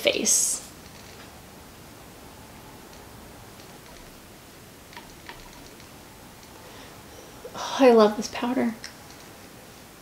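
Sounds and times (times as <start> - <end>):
quiet room hiss: 0.0 - 10.0.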